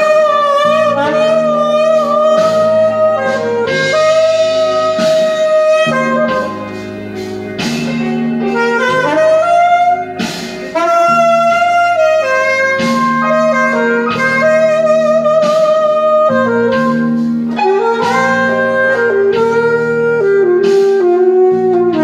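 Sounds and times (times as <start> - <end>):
alto saxophone blues line: 0.0 - 22.0
backing track: 0.0 - 22.0.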